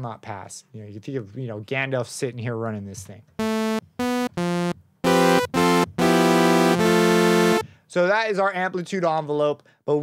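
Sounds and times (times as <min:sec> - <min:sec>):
synthesizer notes: 0:03.4 - 0:07.6.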